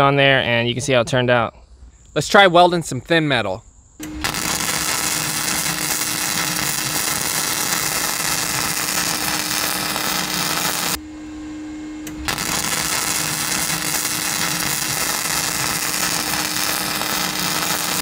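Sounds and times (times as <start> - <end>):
steady low hum: 2.9 - 18.0
welding arc sizzling: 4.0 - 11.0, 12.1 - 18.0.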